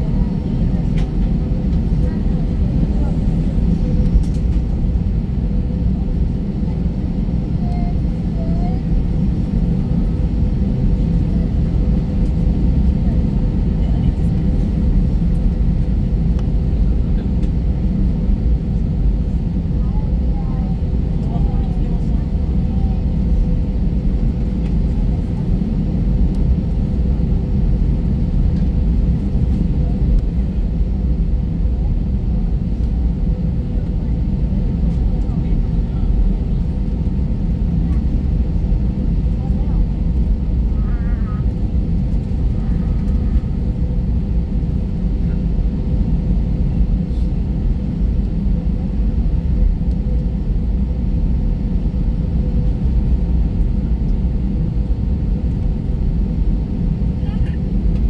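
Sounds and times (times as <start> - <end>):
airplane cabin rumble: 0.0 - 58.0.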